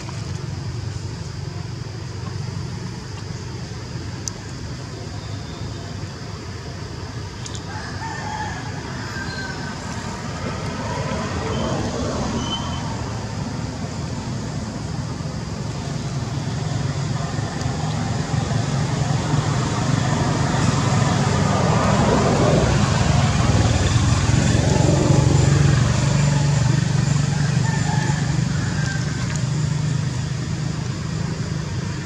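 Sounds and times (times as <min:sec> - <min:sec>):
road traffic rumble: 0:00.0 - 0:32.0.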